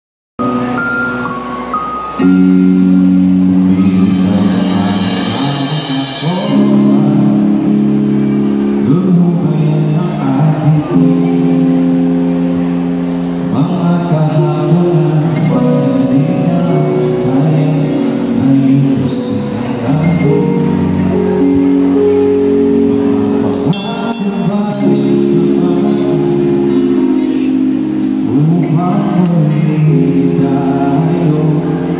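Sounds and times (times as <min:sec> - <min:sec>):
band playing loud chords: 0:00.4 - 0:31.9
sliding low notes: 0:00.4 - 0:31.9
bright struck note: 0:23.5 - 0:25.2.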